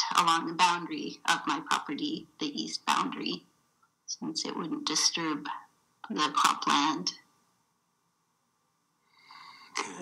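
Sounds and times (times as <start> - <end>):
woman speaking: 0.0 - 3.5, 4.1 - 7.3
woman drawing a soft breath: 9.0 - 9.8.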